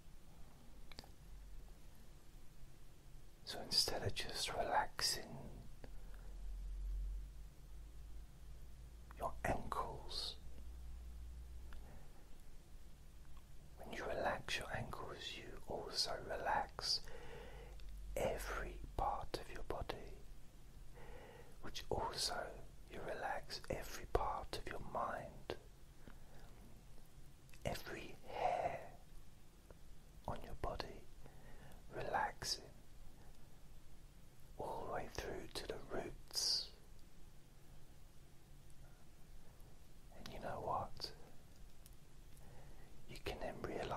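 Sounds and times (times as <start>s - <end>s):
man whispering: 3.4s - 6.3s, 9.1s - 10.6s, 13.7s - 20.3s, 20.9s - 25.7s, 27.5s - 29.0s, 30.2s - 32.8s, 34.6s - 36.9s, 40.1s - 41.4s, 42.4s - 43.9s.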